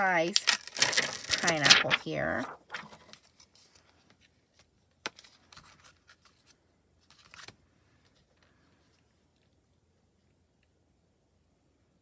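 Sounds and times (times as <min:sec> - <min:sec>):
soft rustling of paper: 0:00.0 - 0:10.7.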